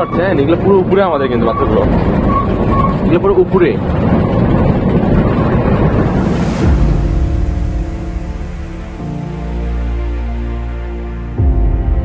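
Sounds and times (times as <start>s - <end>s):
wind buffeting microphone: 0.0s - 9.0s
bus engine and road rumble: 0.0s - 11.0s
background music: 4.7s - 12.0s.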